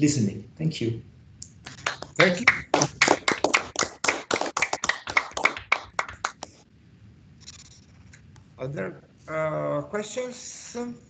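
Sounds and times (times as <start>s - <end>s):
hands clapping: 1.4s - 6.5s.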